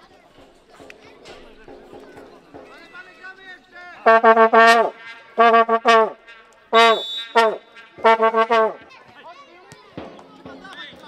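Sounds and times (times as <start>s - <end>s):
horn blasts: 4.0s - 8.9s.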